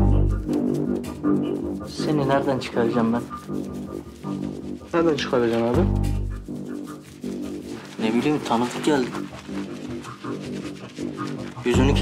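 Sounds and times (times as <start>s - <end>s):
dramatic background music: 0.0s - 12.0s.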